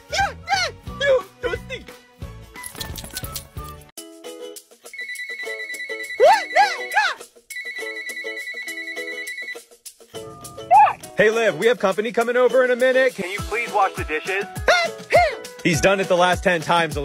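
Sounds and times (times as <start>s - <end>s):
person exclaiming: 0.0s - 1.8s, 6.2s - 7.2s, 10.7s - 11.1s, 14.5s - 15.5s
electronic phone ringtone trilling: 5.0s - 9.6s.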